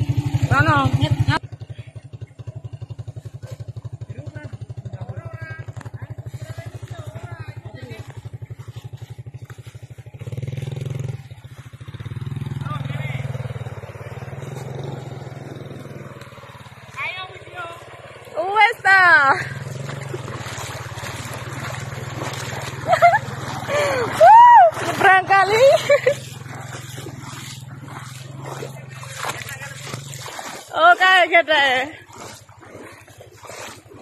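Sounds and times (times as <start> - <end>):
small motorcycle engine idling: 0.0 - 34.0
voices: 0.3 - 9.7, 11.8 - 15.5, 16.1 - 32.5.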